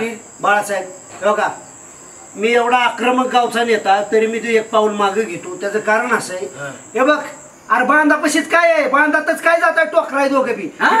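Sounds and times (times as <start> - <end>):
faint high-pitched whine: 0.0 - 11.0
man speaking: 2.4 - 11.0.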